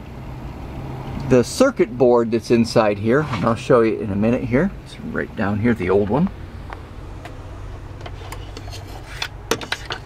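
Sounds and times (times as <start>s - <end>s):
steady low hum: 0.0s - 10.0s
circuit board rubbing and scraping: 8.0s - 10.0s
sharp clicks and knocks: 8.0s - 10.0s.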